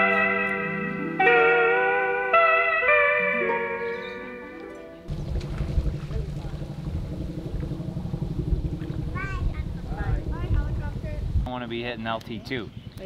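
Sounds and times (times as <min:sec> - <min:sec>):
high-pitched calls: 0:00.0 - 0:05.1
slide guitar music: 0:00.0 - 0:05.1
wind on microphone: 0:05.1 - 0:11.5.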